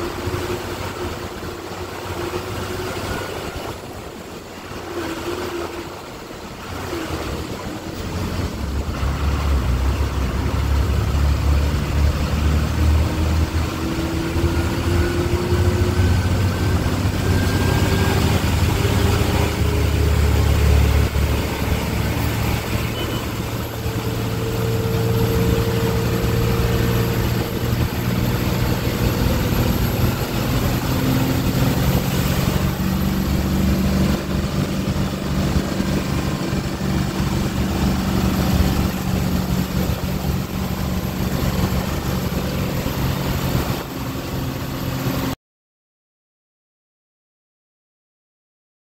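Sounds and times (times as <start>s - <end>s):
bus engine droning: 0.0s - 45.4s
road noise: 0.0s - 45.4s
wind through window: 0.0s - 45.4s.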